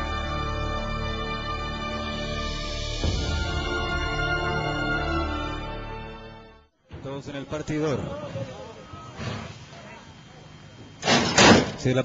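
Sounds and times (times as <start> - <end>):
background hiss: 0.0 - 12.0.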